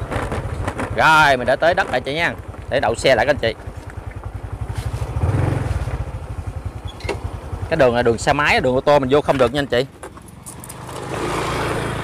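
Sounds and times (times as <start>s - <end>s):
motorbike engine idling: 0.0s - 12.0s.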